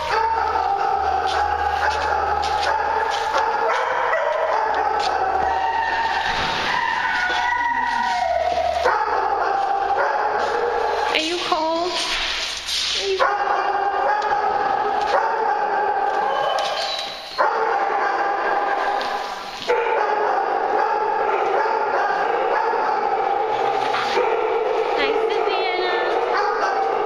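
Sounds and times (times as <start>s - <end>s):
many dogs barking and yipping: 0.0s - 11.9s, 13.0s - 27.0s.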